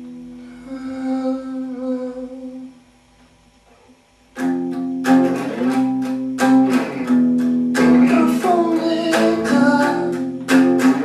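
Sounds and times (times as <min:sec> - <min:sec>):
guitar chord ringing: 0:04.4 - 0:11.0.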